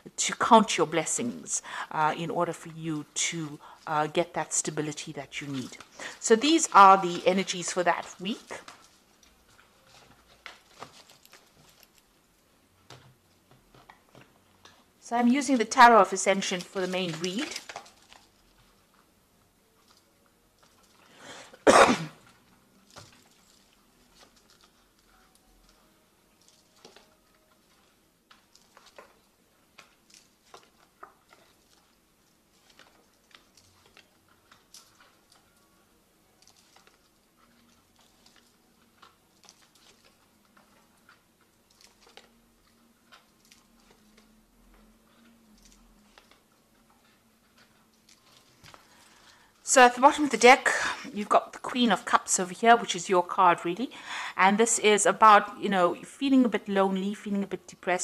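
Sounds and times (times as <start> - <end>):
person coughing: 21.5 - 22.2.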